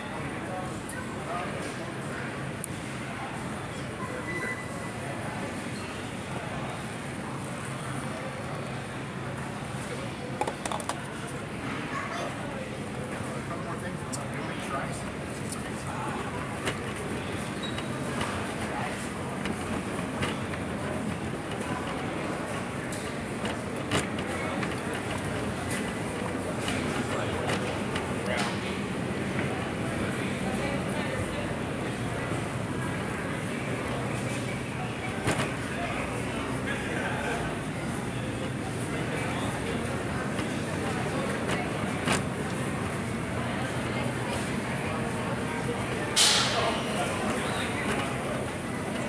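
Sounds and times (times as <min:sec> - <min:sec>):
faint voices: 0:00.0 - 0:49.0
steady background hum: 0:00.0 - 0:49.0.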